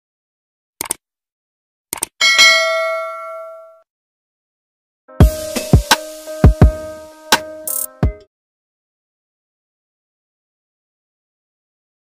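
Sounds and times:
mouse clicks: 0.8s - 1.0s
bright bell ding: 2.2s - 3.8s.

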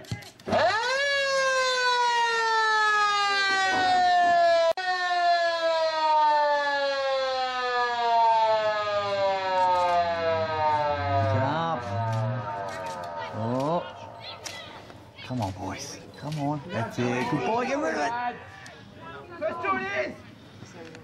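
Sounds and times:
siren winding up and falling: 0.5s - 14.2s.

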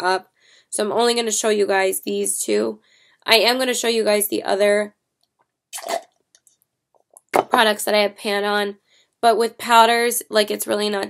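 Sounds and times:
sip through drinking straw: 5.8s - 6.1s.

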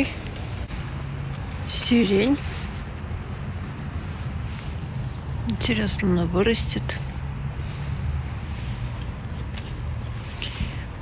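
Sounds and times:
faint rustle: 0.0s - 11.0s
low outdoor rumble: 0.0s - 11.0s.

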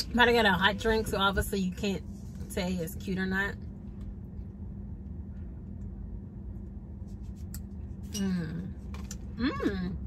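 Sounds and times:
car cabin hum: 0.0s - 7.3s.

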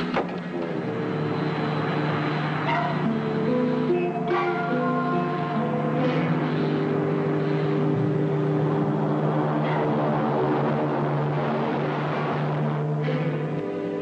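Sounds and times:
rocket engine roar: 0.0s - 14.0s.

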